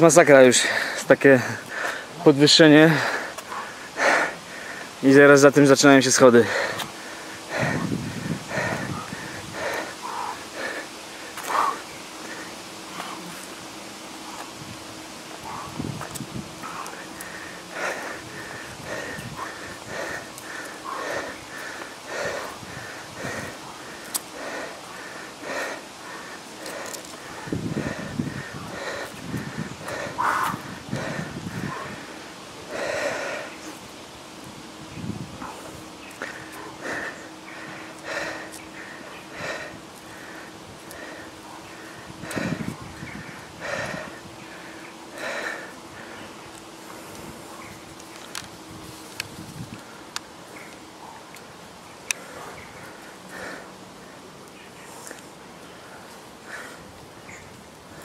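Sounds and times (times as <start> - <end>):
man breathing hard: 0.0 - 47.7, 52.2 - 58.0.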